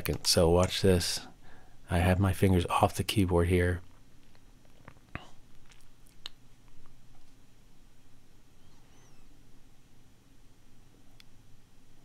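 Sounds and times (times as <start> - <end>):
low steady hum: 0.0 - 12.0
faint high chirps: 8.5 - 9.4.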